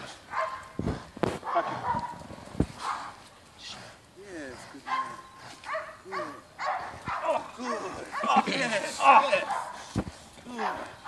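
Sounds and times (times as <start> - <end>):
man shouting: 7.1 - 9.7, 10.5 - 10.9.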